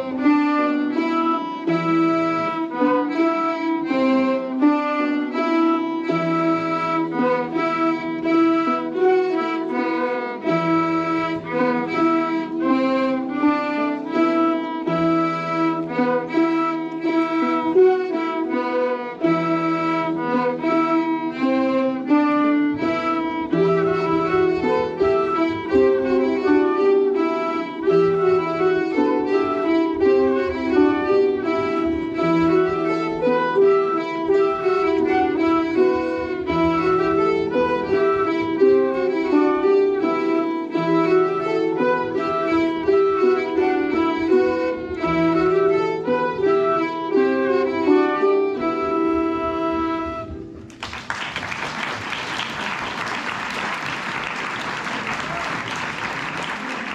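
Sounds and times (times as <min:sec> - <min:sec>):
fiddle: 0:00.0 - 0:56.9
flutes: 0:22.7 - 0:50.8, 0:54.3 - 0:56.9.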